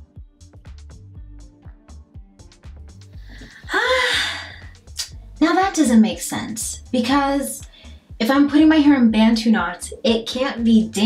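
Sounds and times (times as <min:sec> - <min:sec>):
background music with steady beat: 0:00.0 - 0:11.0
woman sighing: 0:03.3 - 0:04.7.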